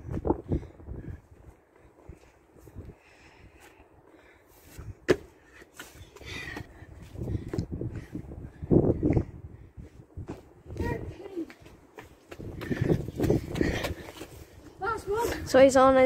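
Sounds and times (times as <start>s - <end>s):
trainers scuffing on brick and paving: 10.1s - 15.8s.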